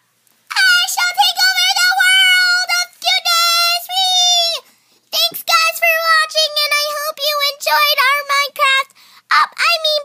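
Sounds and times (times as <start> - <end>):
girl singing nonsense syllables: 0.5 - 10.0.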